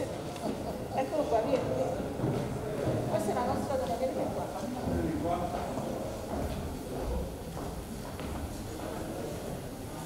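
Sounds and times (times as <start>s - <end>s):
faint murmured voices: 0.0s - 10.0s
footsteps on wooden stage: 2.0s - 4.0s, 4.6s - 9.6s.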